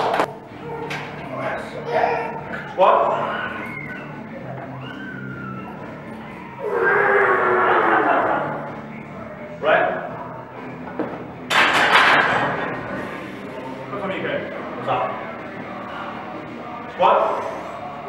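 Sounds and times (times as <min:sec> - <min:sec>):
voices shouting encouragement: 0:00.0 - 0:08.9
loud sustained shout: 0:03.0 - 0:08.7.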